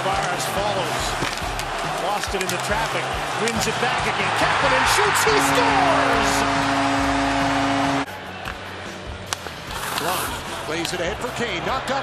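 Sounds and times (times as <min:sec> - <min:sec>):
crowd cheering: 0:00.0 - 0:09.2
goal horn steady note: 0:05.2 - 0:08.1.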